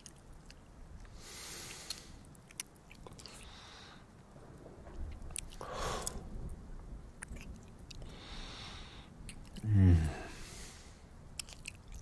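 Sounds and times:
soft breaths: 1.0s - 2.4s, 3.0s - 4.5s, 5.5s - 6.5s, 7.9s - 11.2s.

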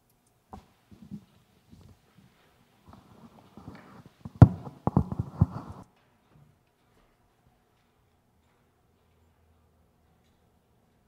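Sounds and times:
microphone handling knocks and rubbing: 2.9s - 5.8s.

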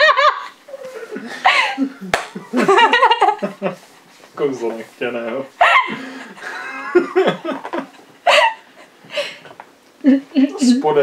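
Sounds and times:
woman laughing: 0.0s - 3.7s, 5.6s - 8.7s.

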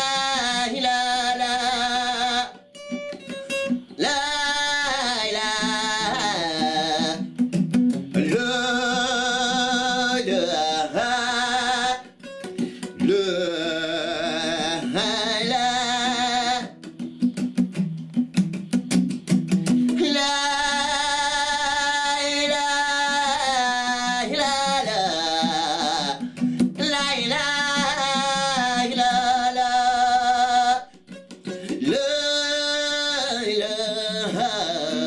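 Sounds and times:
man singing: 0.0s - 3.3s, 3.9s - 7.4s, 8.1s - 17.0s, 19.6s - 35.0s
strummed acoustic guitar: 0.0s - 35.0s.

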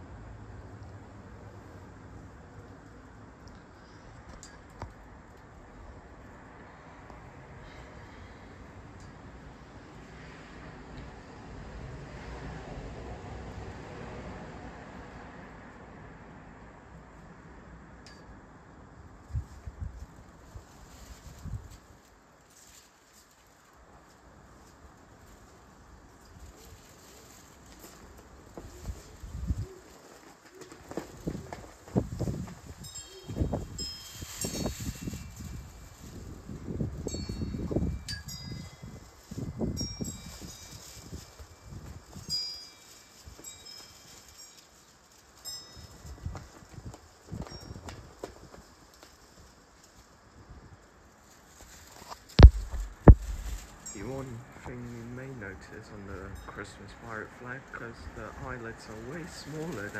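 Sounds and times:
wind buffeting microphone: 28.6s - 29.8s, 31.1s - 42.4s, 52.4s - 54.8s
sharp knock: 52.4s - 53.5s.

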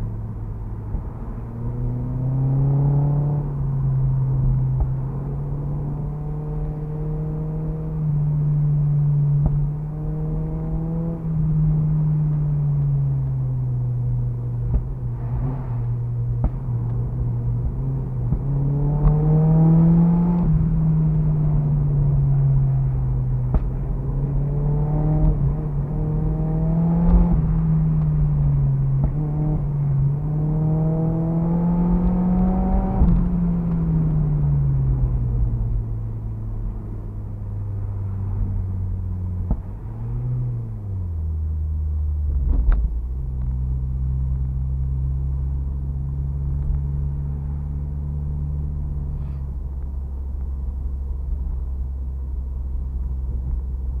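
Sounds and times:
car engine revving: 0.0s - 51.9s.

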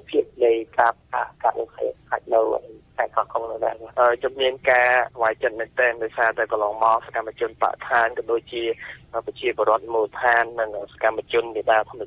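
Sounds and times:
radio news speech: 0.0s - 12.0s.

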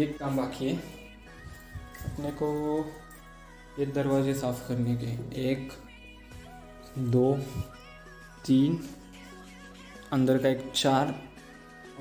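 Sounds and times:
quiet background music: 0.0s - 12.0s
man speaking: 2.0s - 3.0s, 3.8s - 5.8s, 6.9s - 7.8s, 10.1s - 11.3s.

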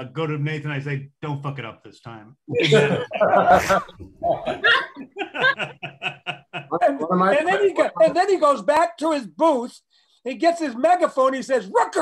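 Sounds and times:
man speaking: 1.0s - 12.0s
people laughing: 2.5s - 8.1s.

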